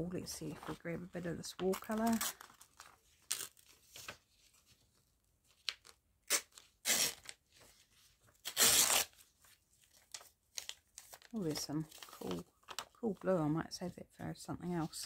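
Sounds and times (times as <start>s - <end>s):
magazine paper tearing: 2.0s - 3.8s, 5.7s - 7.4s, 8.4s - 9.2s.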